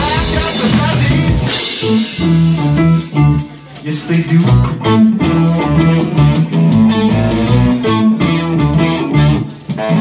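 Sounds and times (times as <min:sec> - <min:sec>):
drum kit: 0:00.0 - 0:10.0
guitar: 0:00.0 - 0:10.0.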